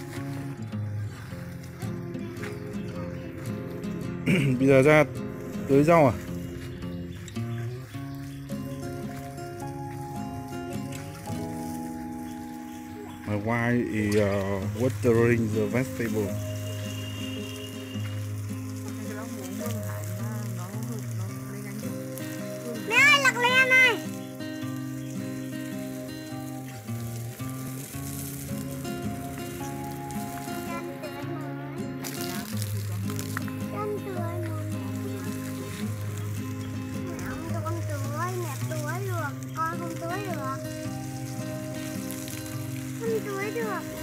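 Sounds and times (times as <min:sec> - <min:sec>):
background music sustained notes: 0:00.0 - 0:44.0
garden hose spray hissing: 0:00.0 - 0:44.0.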